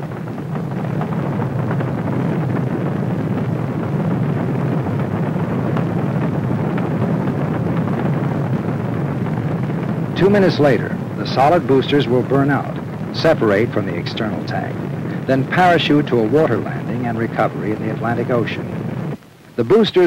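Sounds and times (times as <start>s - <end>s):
rocket launch roar: 0.0s - 20.0s.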